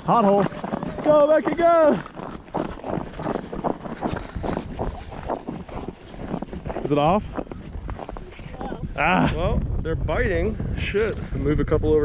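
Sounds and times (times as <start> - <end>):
footsteps on snowy ice: 0.0 - 9.3
wind on microphone: 0.0 - 12.0.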